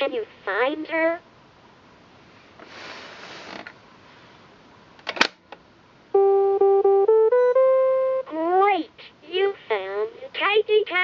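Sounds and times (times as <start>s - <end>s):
toy beeping jingle: 6.2s - 8.3s.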